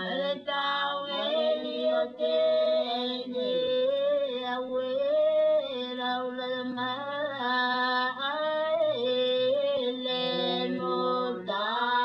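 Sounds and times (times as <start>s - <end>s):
high solo voice singing: 0.0s - 7.0s, 8.9s - 12.0s.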